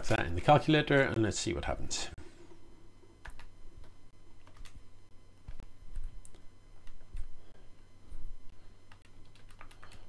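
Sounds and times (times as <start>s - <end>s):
calculator keys clicking: 8.9s - 10.0s.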